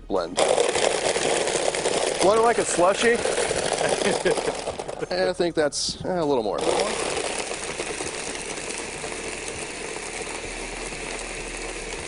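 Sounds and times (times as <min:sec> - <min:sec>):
blender motor running: 0:00.4 - 0:05.4, 0:06.6 - 0:12.0.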